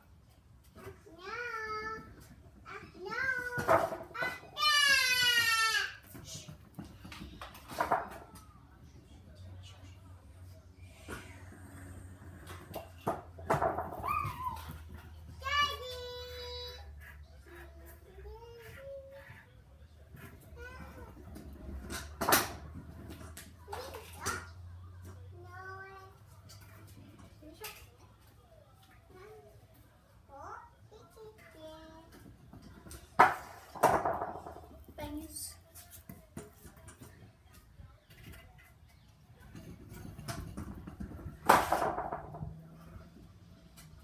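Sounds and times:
child squealing: 0:14.0 - 0:14.8.

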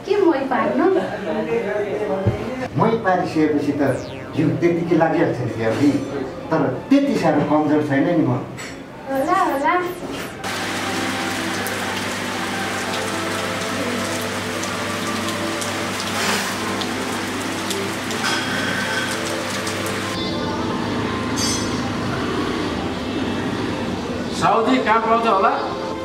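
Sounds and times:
rain on wet pavement: 0:10.4 - 0:20.2
music of sustained notes: 0:10.5 - 0:23.9.

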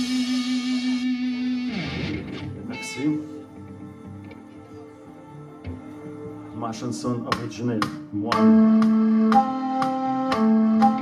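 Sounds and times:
electric guitar sustained note: 0:00.0 - 0:07.1.

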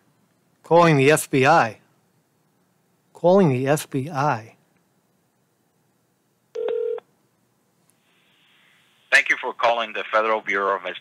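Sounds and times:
telephone beep: 0:06.6 - 0:07.0.

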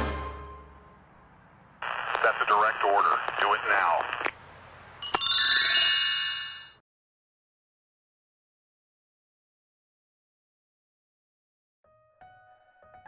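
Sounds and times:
bright ringing chime: 0:05.0 - 0:06.8.

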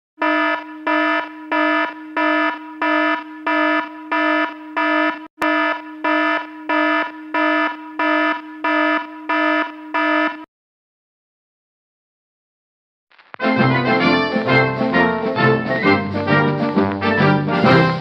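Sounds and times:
electronic alarm buzzy beeps: 0:00.2 - 0:10.5.

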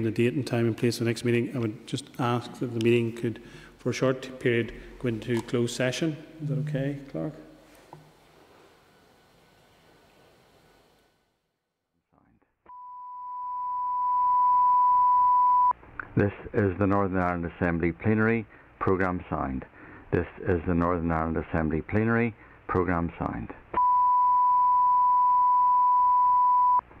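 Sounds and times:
steady pure test tone: 0:12.7 - 0:15.7.

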